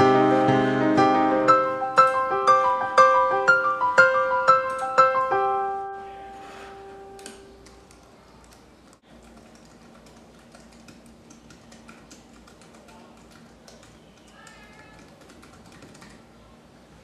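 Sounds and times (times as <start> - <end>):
piano notes: 0.0 - 7.8
typing on computer keyboard: 7.2 - 16.2.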